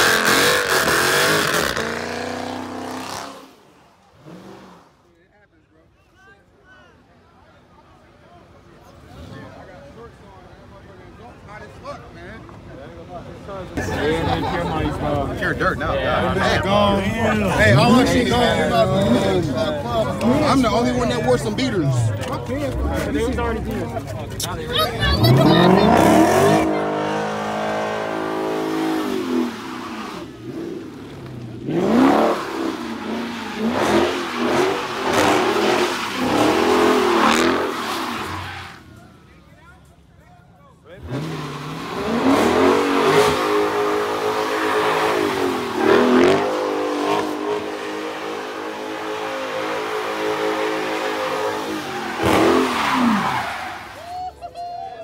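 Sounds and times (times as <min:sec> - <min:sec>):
car engine revving: 0:00.0 - 0:05.0, 0:24.7 - 0:38.8, 0:40.9 - 0:54.0.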